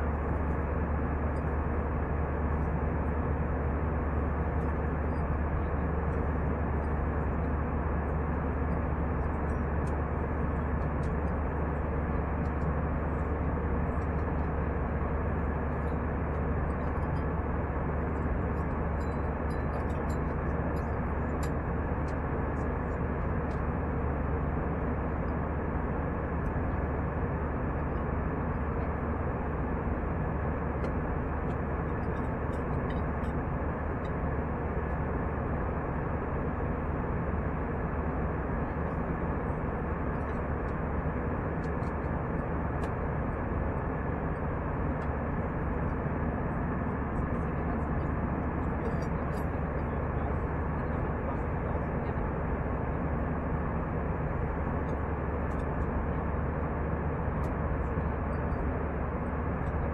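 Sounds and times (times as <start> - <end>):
airliner cabin noise: 11.0 - 59.9.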